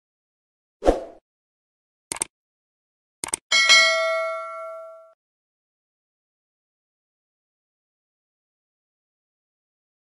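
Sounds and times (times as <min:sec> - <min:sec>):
bell chime ding: 0:03.5 - 0:05.2.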